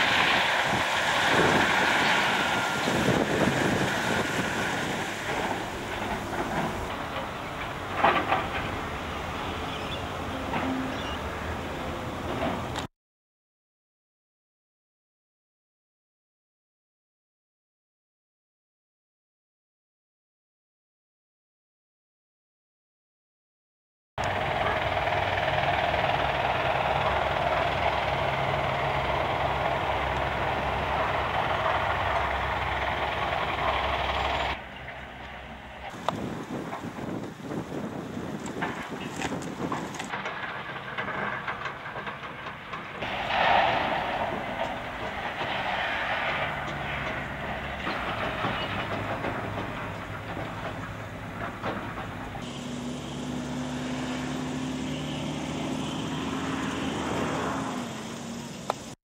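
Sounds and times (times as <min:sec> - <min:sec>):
machinery clatter: 0:00.0 - 0:10.9, 0:24.2 - 0:59.0
machinery hiss: 0:00.0 - 0:12.3, 0:52.4 - 0:59.0
heavy machinery rumbling: 0:00.0 - 0:12.9, 0:24.2 - 0:59.0.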